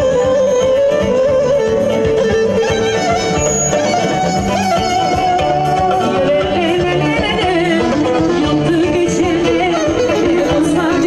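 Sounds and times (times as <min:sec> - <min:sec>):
band with steady beat: 0:00.0 - 0:11.0
woman singing into microphone: 0:05.6 - 0:11.0.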